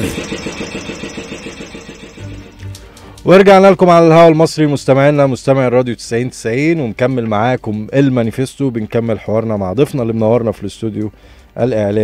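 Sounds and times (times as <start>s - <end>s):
radio jingle music: 0.0s - 4.4s.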